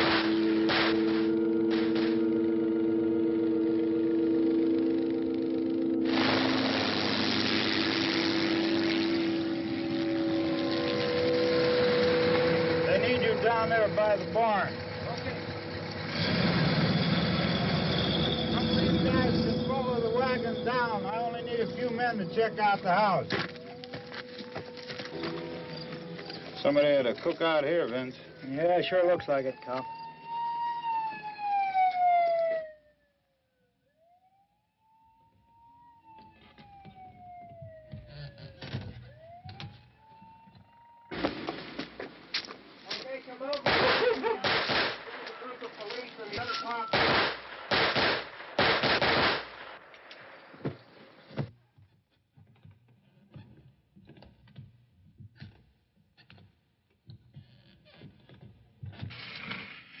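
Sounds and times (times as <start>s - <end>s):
siren wailing: 0.0s - 41.2s, 45.8s - 47.0s
rapid sharp noises: 6.0s - 14.0s, 46.9s - 50.5s.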